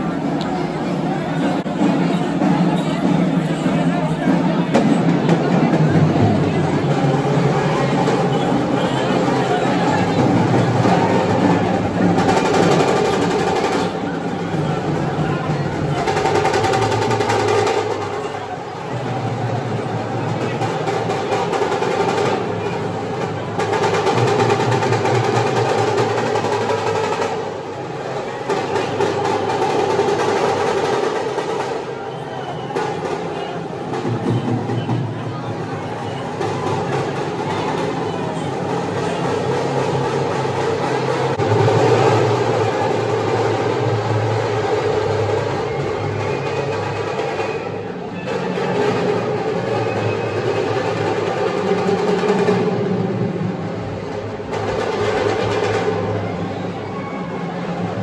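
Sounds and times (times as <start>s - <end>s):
din of a packed crowd: 0.0s - 58.0s
fast drum roll: 1.7s - 32.0s, 36.3s - 47.6s, 48.3s - 56.6s.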